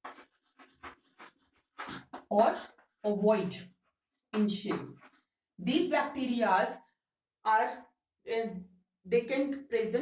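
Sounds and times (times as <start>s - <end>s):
chalk scratching on chalkboard: 0.0s - 2.9s.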